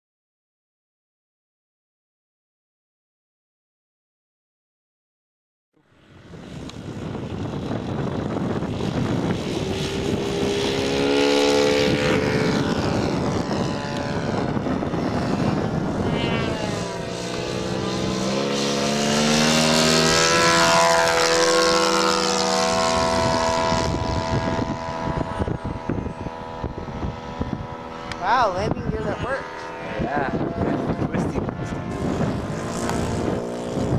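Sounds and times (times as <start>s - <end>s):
model plane piston engines: 5.8s - 33.9s.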